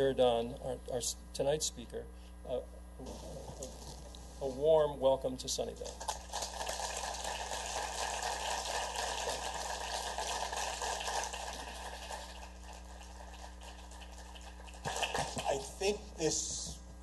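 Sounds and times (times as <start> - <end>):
audience applauding: 6.0 - 15.7.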